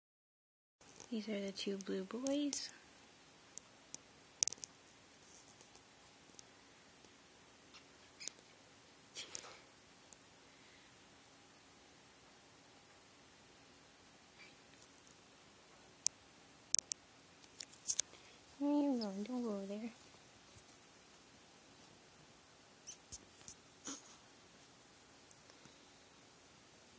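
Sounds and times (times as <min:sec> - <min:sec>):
rat pups squeaking: 0:07.7 - 0:08.5, 0:22.8 - 0:24.2.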